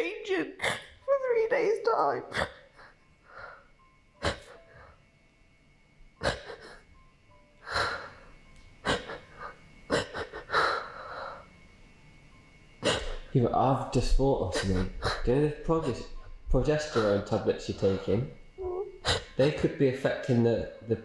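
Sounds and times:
shaky sobbing breaths: 6.2s - 6.9s, 7.6s - 11.5s, 14.5s - 18.4s.

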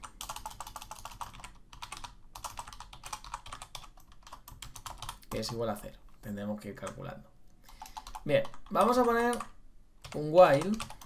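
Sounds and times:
typing on computer keyboard: 0.0s - 5.6s, 7.7s - 11.0s.

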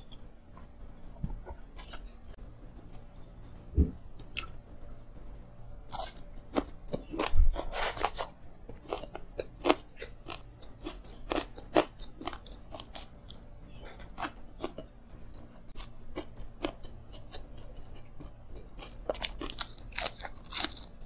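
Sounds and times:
chewing crunchy food: 0.0s - 3.3s, 4.2s - 21.0s.

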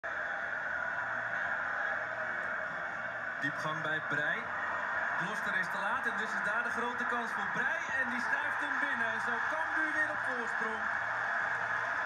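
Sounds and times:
stadium sound through tv speaker: 0.1s - 12.0s.

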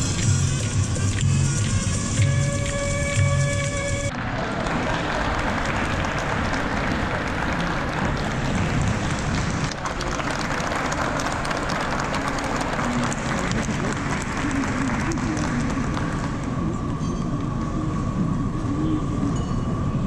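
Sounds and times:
audience applauding: 0.0s - 16.8s.

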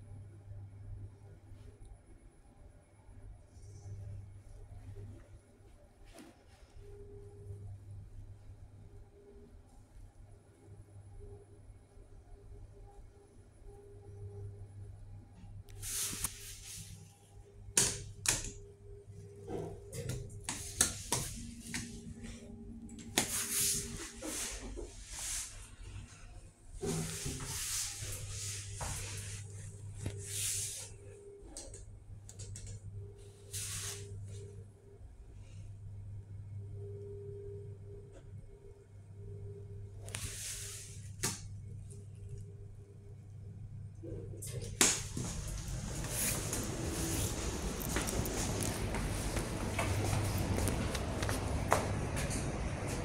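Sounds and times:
faint steady hum: 0.0s - 53.0s.

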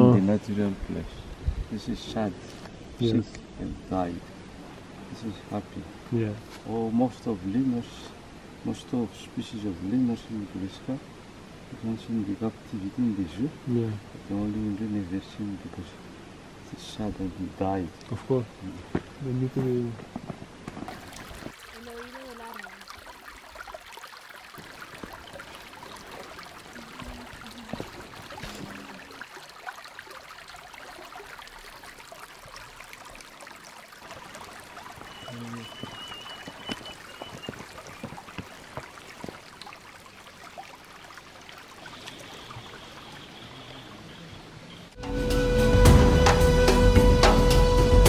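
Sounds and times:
forest stream trickling: 0.0s - 46.5s
high chirping call: 35.0s - 37.6s.

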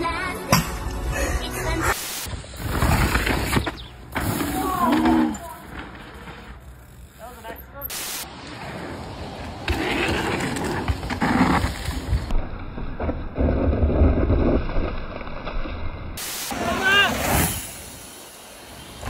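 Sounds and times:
bike tyres rolling over dirt: 2.3s - 19.0s
indistinct voices: 4.4s - 6.0s.

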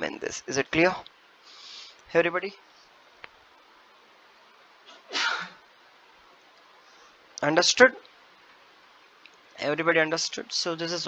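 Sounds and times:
sharp burst of breath: 1.4s - 2.0s.

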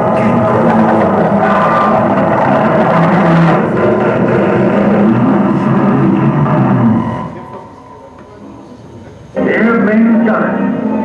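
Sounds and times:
low sustained rumbling tones: 0.0s - 8.8s
dense wall of noise: 0.0s - 11.0s.

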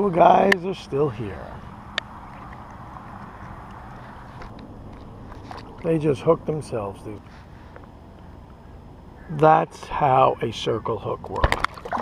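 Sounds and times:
water: 0.0s - 12.0s.

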